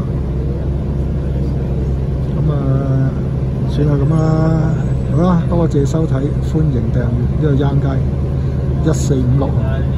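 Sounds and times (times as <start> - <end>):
bus engine and road noise: 0.0 - 9.9.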